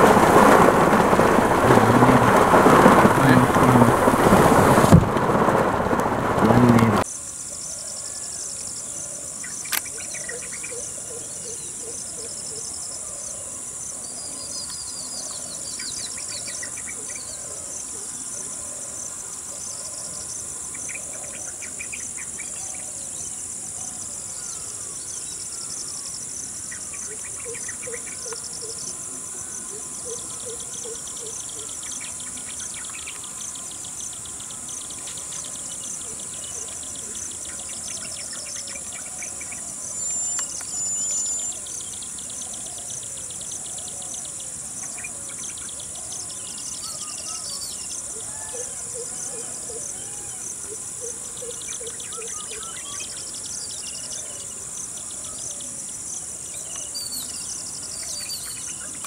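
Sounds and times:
heavy rain: 0:00.0 - 0:07.0
high insect drone: 0:00.0 - 0:59.0
bird calls and chirps: 0:30.0 - 0:55.8, 0:56.4 - 0:59.0.

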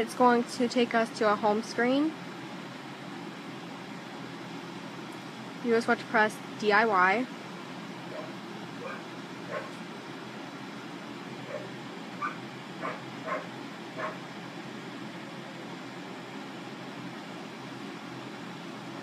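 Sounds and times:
low room hum: 0:00.0 - 0:19.0
animal yipping: 0:08.1 - 0:09.8, 0:11.4 - 0:14.2.

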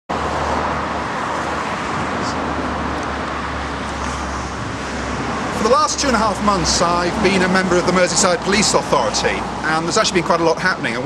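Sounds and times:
road traffic noise: 0:00.1 - 0:11.0.

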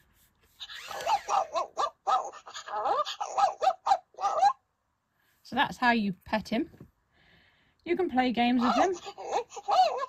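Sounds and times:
electronic puppy yips and whimpers: 0:00.6 - 0:04.6, 0:08.6 - 0:10.0.

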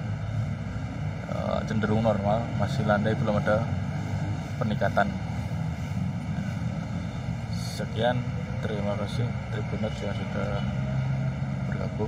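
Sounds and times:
low rumbling noise: 0:00.0 - 0:12.0.

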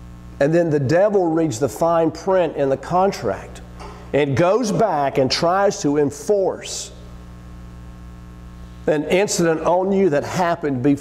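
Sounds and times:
electrical mains hum: 0:00.0 - 0:11.0
man's voice: 0:00.4 - 0:07.0, 0:08.9 - 0:11.0.

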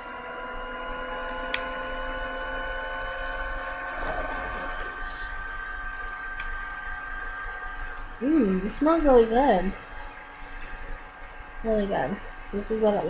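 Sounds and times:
steady multi-tone hum: 0:00.0 - 0:13.0.

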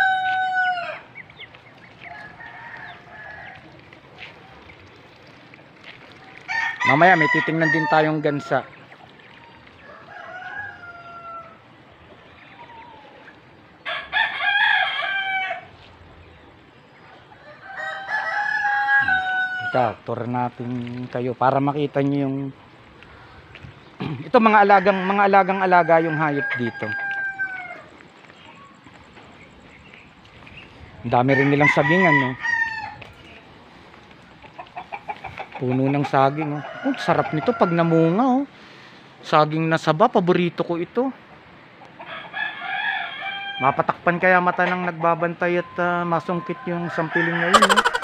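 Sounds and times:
rooster crowing: 0:00.0 - 0:01.1, 0:02.0 - 0:03.7, 0:06.5 - 0:08.6, 0:09.8 - 0:11.6, 0:13.8 - 0:15.7, 0:17.4 - 0:20.0, 0:24.7 - 0:27.9, 0:31.3 - 0:33.0, 0:36.2 - 0:38.2, 0:42.0 - 0:43.8, 0:46.4 - 0:48.0
chickens clucking: 0:00.0 - 0:14.1, 0:15.8 - 0:32.4, 0:33.0 - 0:38.2, 0:44.2 - 0:48.0.

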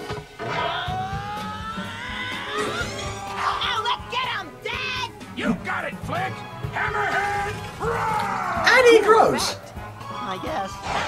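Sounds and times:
background music: 0:00.0 - 0:11.0
cartoon voices shouting: 0:00.6 - 0:09.6.

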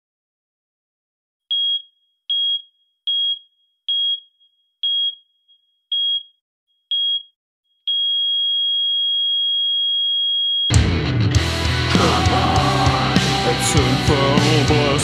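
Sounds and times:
heart monitor beeps: 0:01.5 - 0:05.2, 0:05.9 - 0:06.3, 0:06.9 - 0:07.3, 0:07.9 - 0:10.7.

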